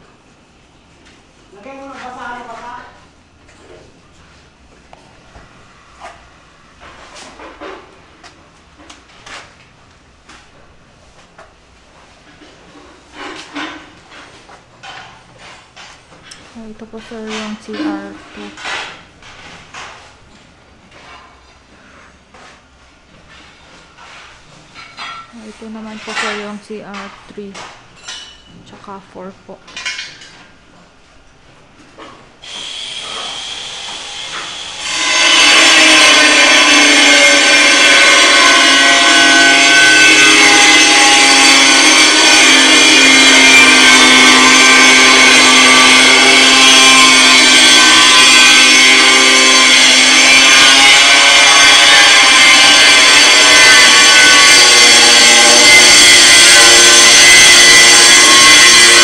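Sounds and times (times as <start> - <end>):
power tool running under load: 32.4 - 59.0.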